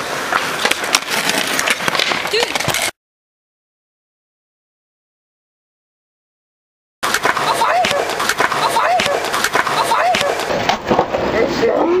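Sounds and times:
skateboard wheels rolling on concrete: 0:00.0 - 0:03.0, 0:07.0 - 0:12.0
skateboard clacking and grinding ledge: 0:07.0 - 0:11.3.

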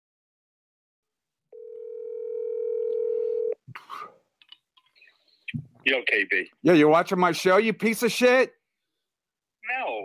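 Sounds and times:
telephone line tone: 0:01.5 - 0:03.6.

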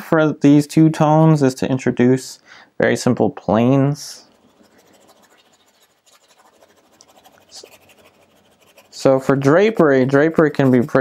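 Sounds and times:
paintbrush scratching on canvas: 0:04.3 - 0:11.0.

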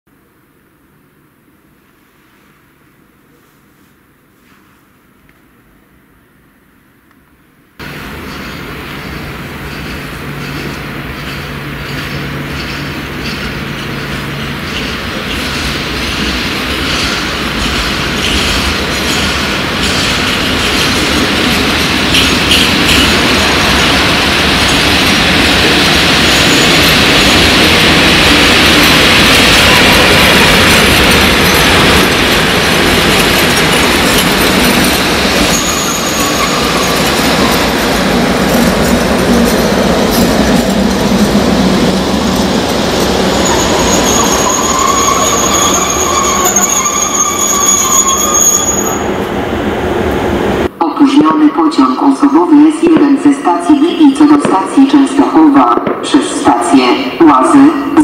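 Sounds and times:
electric locomotive rumble: 0:07.8 - 0:50.8
wheels squealing: 0:28.8 - 0:37.7, 0:43.0 - 0:49.1.

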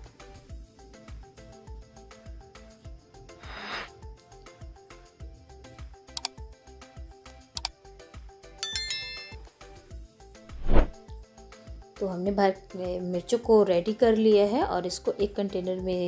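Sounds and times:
background music with steady beat: 0:00.0 - 0:16.0
sharp mouse clicks: 0:06.1 - 0:06.4
bright bell-like ding: 0:08.6 - 0:09.4
whoosh: 0:10.5 - 0:11.0.

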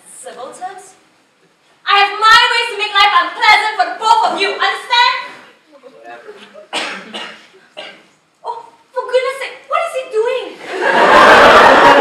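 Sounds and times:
audience laughing: 0:10.6 - 0:12.0.

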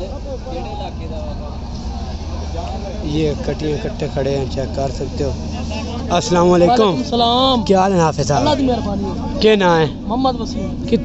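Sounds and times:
men talking indistinctly: 0:00.0 - 0:11.0
steady low rumble: 0:00.0 - 0:11.0.

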